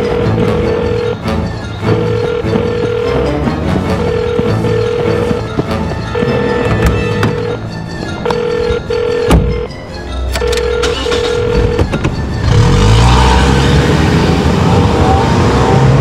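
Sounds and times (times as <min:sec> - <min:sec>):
film score music: 0:00.0 - 0:16.0
car engine revving and pulling away: 0:10.8 - 0:16.0.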